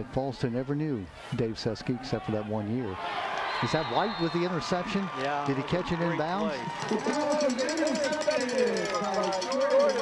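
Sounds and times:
stadium background noise: 0:00.0 - 0:10.0
indistinct voices talking: 0:03.6 - 0:10.0.

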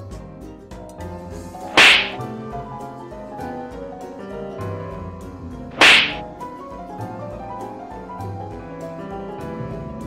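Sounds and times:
light keyboard melody: 0:02.3 - 0:10.0.

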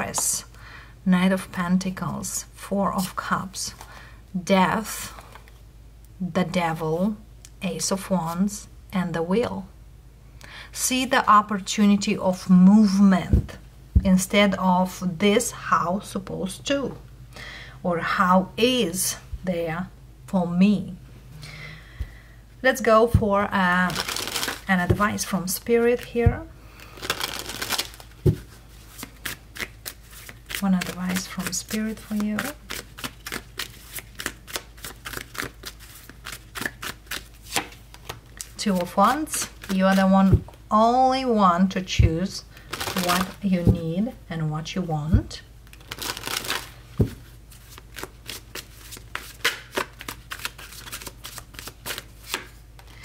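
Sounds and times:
cards being shuffled: 0:23.9 - 0:25.0, 0:27.0 - 0:40.1, 0:45.6 - 0:52.9.

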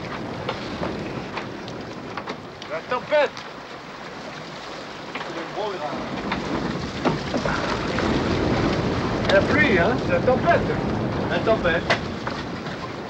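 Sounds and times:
sea noise: 0:00.0 - 0:13.0
wind: 0:00.0 - 0:13.0.

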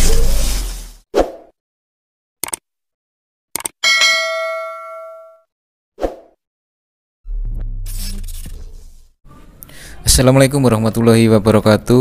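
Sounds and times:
bright bell ding: 0:03.8 - 0:05.5.

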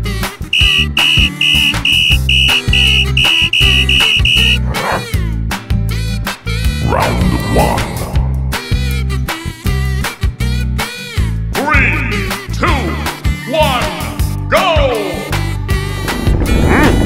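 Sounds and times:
cartoon music with bass beat: 0:00.5 - 0:04.6
referee whistle short blasts: 0:00.6 - 0:04.6.

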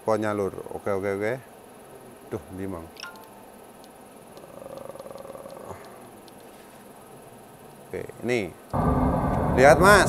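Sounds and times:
faint steady tone: 0:00.0 - 0:10.0
low background noise: 0:00.0 - 0:10.0
button clicks: 0:03.0 - 0:03.4.

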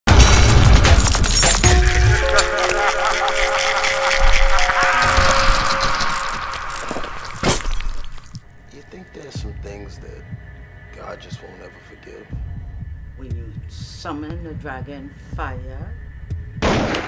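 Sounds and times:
harsh noise: 0:00.1 - 0:08.5
swirling texture: 0:00.9 - 0:08.4
eerie held tones: 0:01.6 - 0:13.2.

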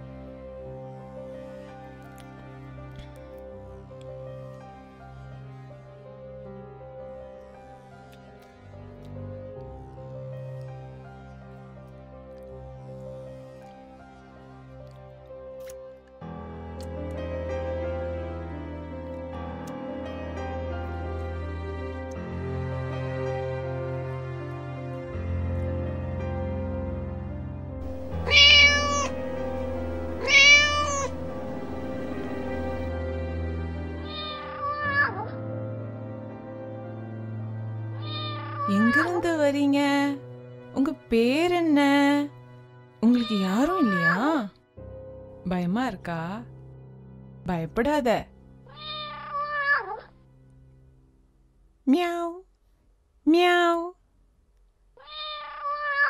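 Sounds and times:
soft background music: 0:00.0 - 0:52.5
kitten meowing: 0:27.9 - 0:32.9, 0:34.1 - 0:35.3, 0:38.0 - 0:39.1, 0:48.7 - 0:50.1, 0:55.0 - 0:56.0.

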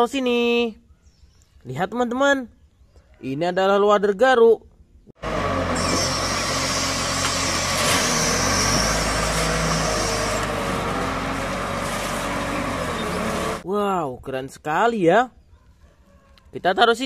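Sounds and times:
diesel engine under load: 0:05.2 - 0:13.6.

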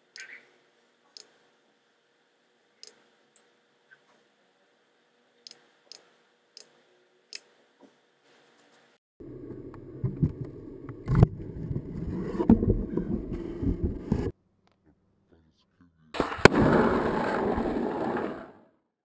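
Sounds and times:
skateboard wheels rolling on pavement: 0:11.4 - 0:14.3, 0:16.2 - 0:18.7
skateboard clacks: 0:16.2 - 0:18.6.

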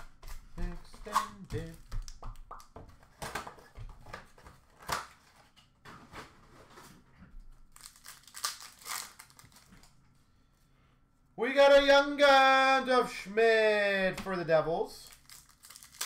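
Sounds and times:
foil wrappers crinkling and tearing: 0:07.7 - 0:09.9, 0:15.0 - 0:16.0.

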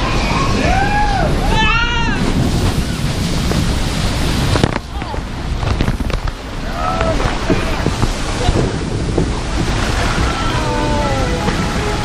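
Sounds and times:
rushing splashing water: 0:00.0 - 0:12.0
wind buffeting microphone: 0:00.0 - 0:12.0.

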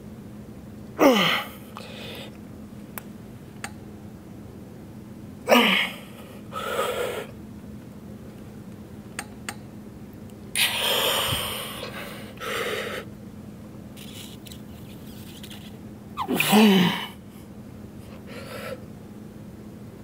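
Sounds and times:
person grunting with strain: 0:01.0 - 0:01.6, 0:05.5 - 0:06.2, 0:16.2 - 0:17.2
person exhaling forcefully: 0:16.2 - 0:17.2.

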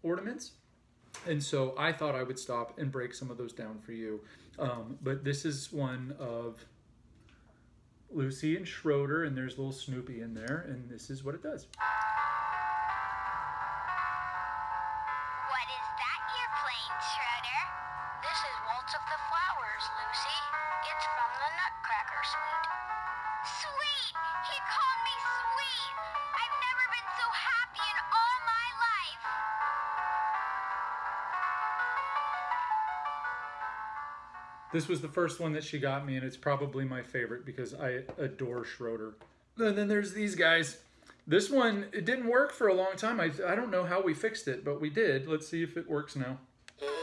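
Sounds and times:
music from small speaker: 0:11.8 - 0:34.8.

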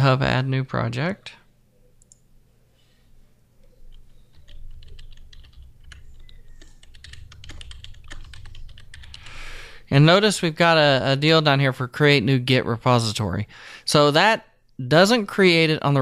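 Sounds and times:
typing on computer keyboard: 0:03.9 - 0:09.3.

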